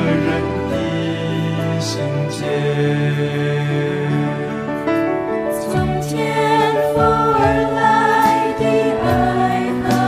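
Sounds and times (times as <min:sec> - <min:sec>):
worship song music: 0:00.0 - 0:10.0.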